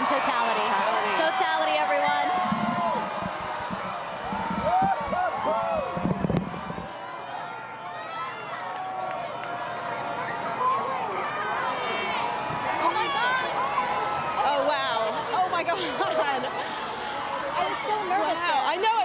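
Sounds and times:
crowd cheering and shouting: 0.0 - 19.0.

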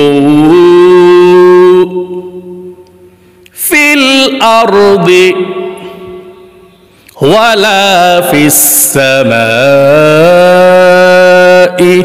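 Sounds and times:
man chanting: 0.0 - 2.9, 3.5 - 12.0.

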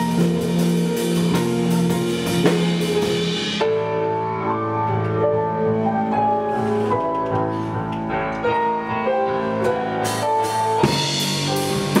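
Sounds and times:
drum kit beat: 0.0 - 4.0, 9.7 - 12.0
electric bass: 0.0 - 12.0
keyboards: 0.0 - 12.0.

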